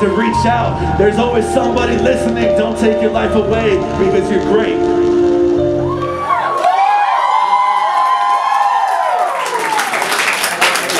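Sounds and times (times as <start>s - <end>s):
audience cheering and whooping: 5.8s - 10.7s
applause: 6.5s - 10.9s.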